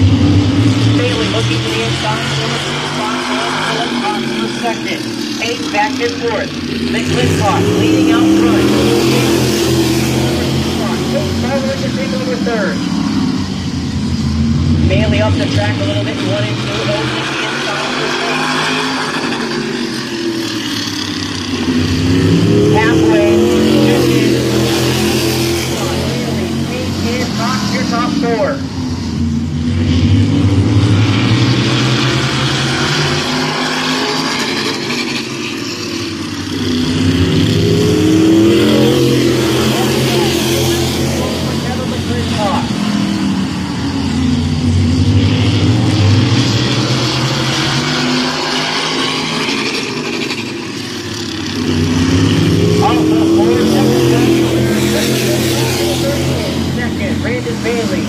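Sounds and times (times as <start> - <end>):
race car engines passing: 0.0 - 58.0.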